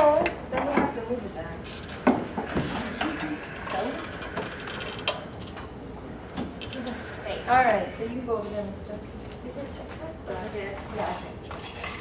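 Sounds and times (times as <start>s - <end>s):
table and chairs clunking and scraping: 1.7s - 5.6s.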